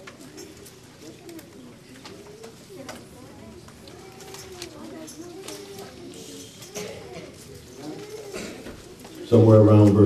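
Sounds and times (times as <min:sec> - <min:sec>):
faint distant talking: 0:00.0 - 0:10.0.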